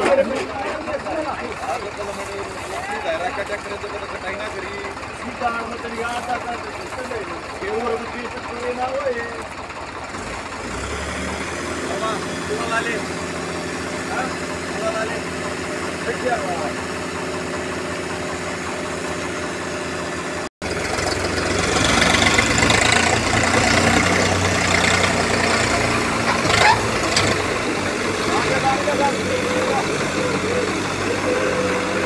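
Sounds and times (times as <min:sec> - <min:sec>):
tractor diesel engine idling: 0:00.0 - 0:32.0.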